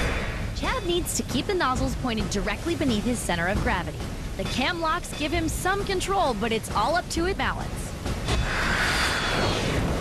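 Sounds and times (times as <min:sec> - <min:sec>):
water jets spraying onto lake: 0:00.4 - 0:08.1.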